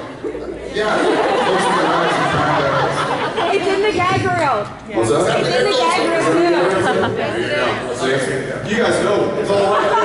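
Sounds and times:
man talking over microphone: 0:00.6 - 0:03.3, 0:05.0 - 0:10.0.

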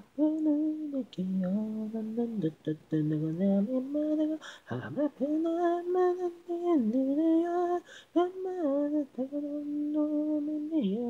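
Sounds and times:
man singing unaccompanied ballad: 0:00.0 - 0:11.0.

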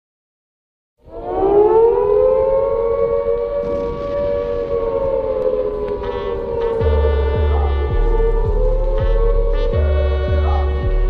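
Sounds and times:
air-raid siren wailing: 0:01.0 - 0:11.0.

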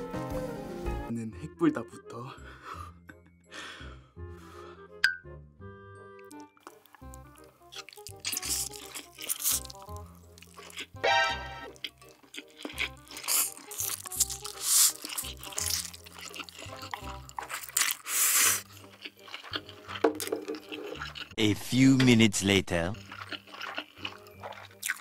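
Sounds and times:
chewing: 0:06.2 - 0:11.0, 0:11.6 - 0:22.2, 0:23.0 - 0:25.0
slurping noodles: 0:07.8 - 0:10.8, 0:12.7 - 0:21.4.

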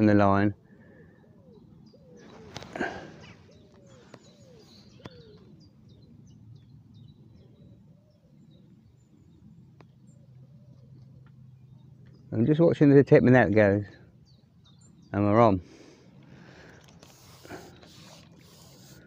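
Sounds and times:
birds calling: 0:00.0 - 0:19.0
light clicks of fishing pole: 0:16.6 - 0:17.2.

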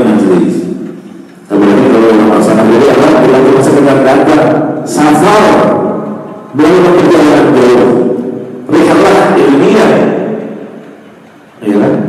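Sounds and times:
man chanting melodically: 0:01.5 - 0:10.6.

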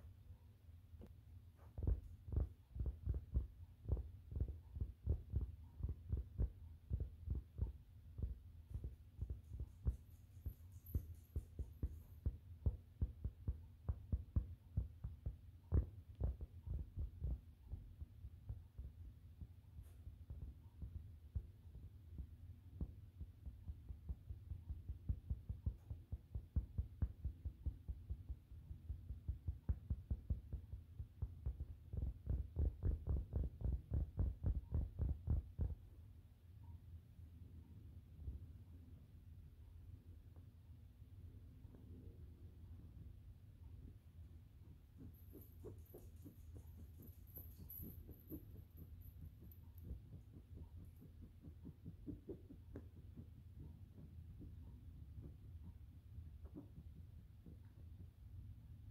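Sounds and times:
fingernails tapping on fabric: 0:01.0 - 0:35.9, 0:44.7 - 0:58.3.

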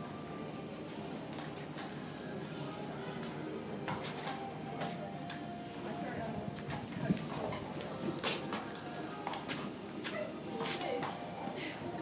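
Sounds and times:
faint background voices: 0:00.0 - 0:12.0.

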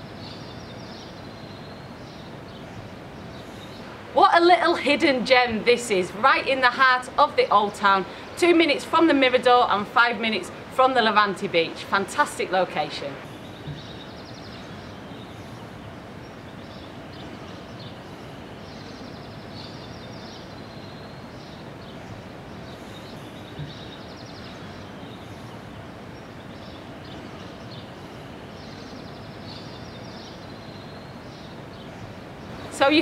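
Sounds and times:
outdoor background noise: 0:00.0 - 0:33.0.

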